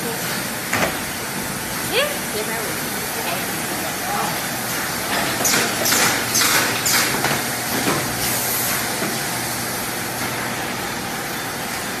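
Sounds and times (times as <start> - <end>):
packaging machinery running: 0.0 - 12.0.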